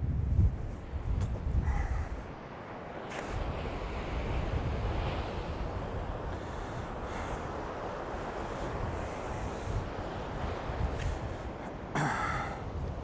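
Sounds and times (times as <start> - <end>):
wind noise on microphone: 0.0 - 13.0
sea surf breaking on beach: 0.8 - 13.0.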